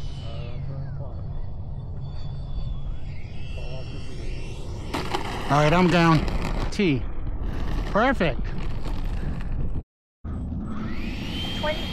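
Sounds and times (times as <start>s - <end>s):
electric ducted-fan jet whine: 0.0s - 8.4s, 10.4s - 11.9s
wind rumbling on microphone: 0.0s - 9.8s.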